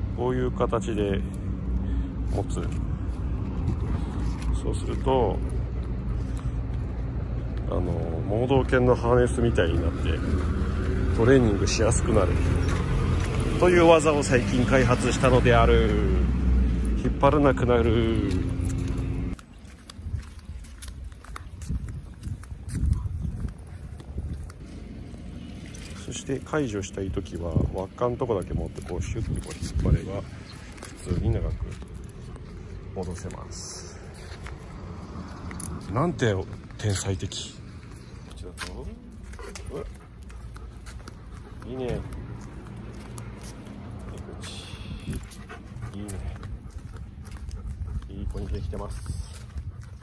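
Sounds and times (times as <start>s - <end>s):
footsteps on pavement: 0.0s - 50.0s
dog collar and leash clinking: 16.8s - 34.8s
dog panting: 36.6s - 50.0s.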